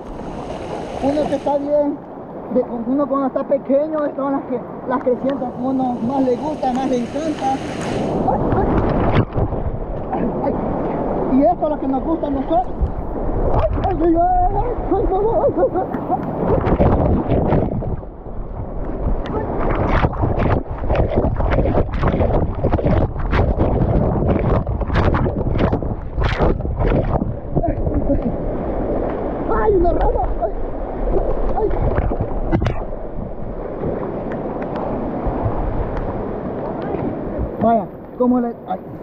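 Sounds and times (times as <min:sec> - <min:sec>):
floodwater rushing and splashing: 0:00.0 - 0:39.0.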